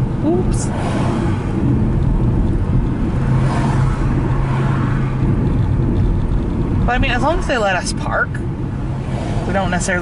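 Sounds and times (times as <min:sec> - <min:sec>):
low hum: 0:00.0 - 0:07.5
car road noise rumble: 0:00.0 - 0:10.0.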